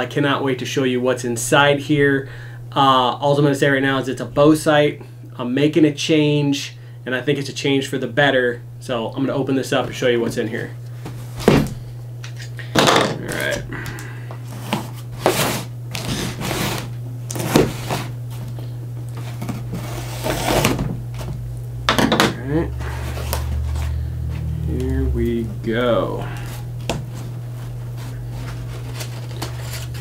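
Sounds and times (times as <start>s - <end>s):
low hum: 16.9s - 30.0s.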